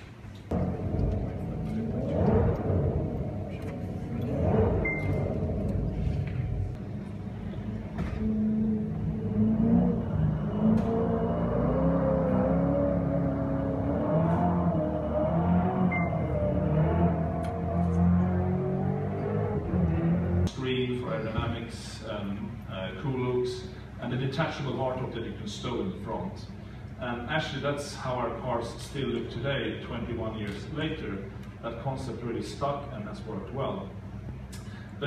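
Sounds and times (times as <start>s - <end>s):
car engine revving: 0.5s - 20.5s.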